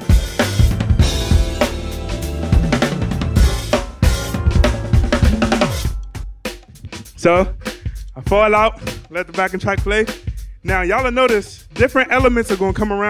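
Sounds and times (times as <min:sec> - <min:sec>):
backing track music: 0:00.0 - 0:13.0
drum kit played hard: 0:00.0 - 0:13.0.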